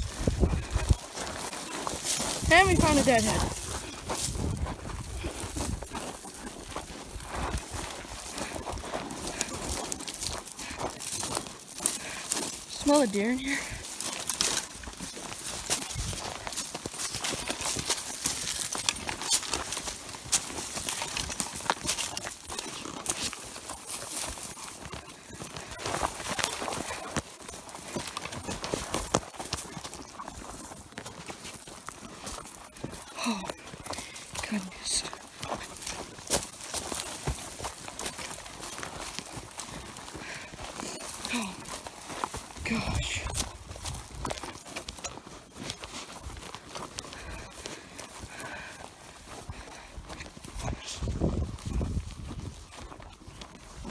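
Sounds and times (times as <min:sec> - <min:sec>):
footsteps crunching through dry grass: 0:00.0 - 0:53.9
stems rustling and snapping: 0:08.4 - 0:30.2.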